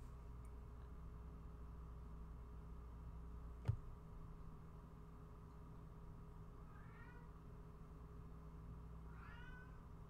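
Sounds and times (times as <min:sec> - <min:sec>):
cat meowing faintly: 0:06.6 - 0:07.4, 0:09.1 - 0:09.9.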